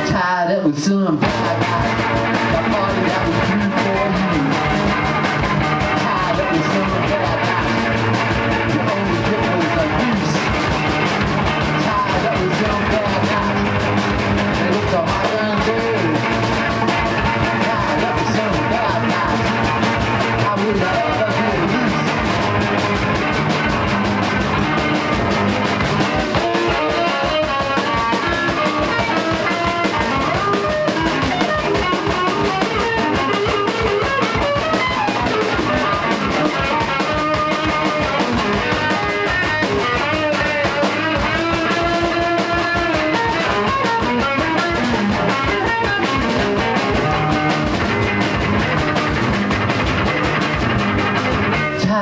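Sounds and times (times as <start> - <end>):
electric bass: 0.0 - 52.0
electric guitar lines: 0.0 - 52.0
drum kit steady beat: 1.2 - 52.0.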